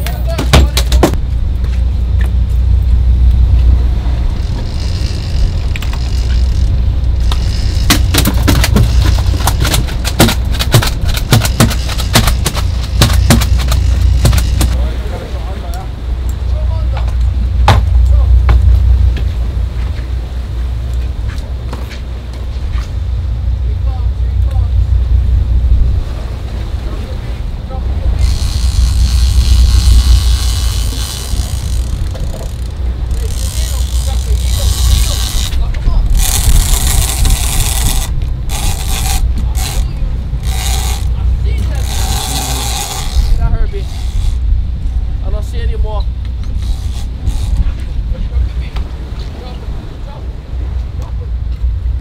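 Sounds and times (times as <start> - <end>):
boat engine rumble: 0.0 - 52.0
wind on microphone: 0.0 - 52.0.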